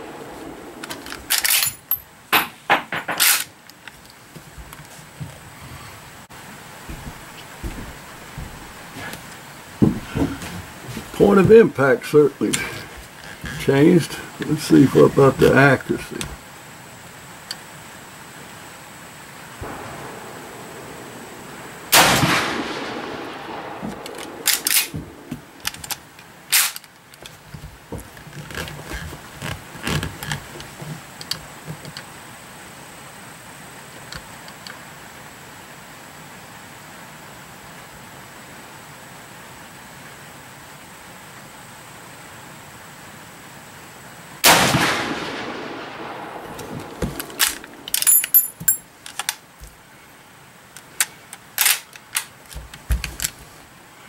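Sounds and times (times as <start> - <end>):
rifle shots: 19.6 - 25.6, 44.4 - 47.9
rifle lever clicking: 24.2 - 24.9.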